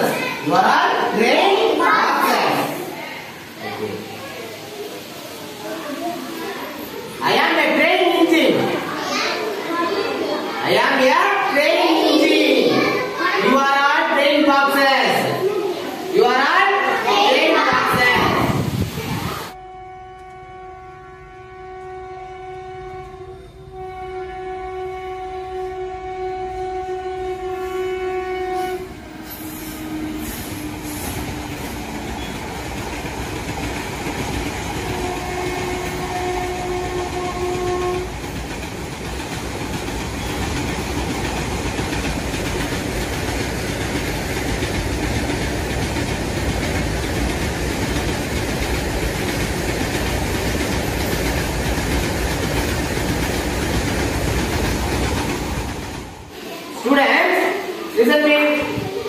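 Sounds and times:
train rumbling: 0:15.3 - 0:56.5
train horn blast: 0:19.6 - 0:31.4, 0:34.8 - 0:38.3.

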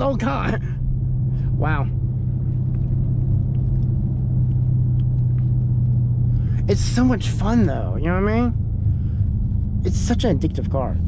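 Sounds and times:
car engine droning: 0:00.0 - 0:11.0
road rumble: 0:00.0 - 0:11.0.

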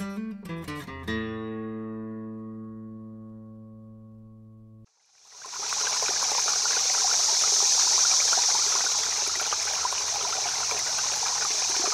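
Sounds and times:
small stream running water: 0:04.9 - 0:11.9.

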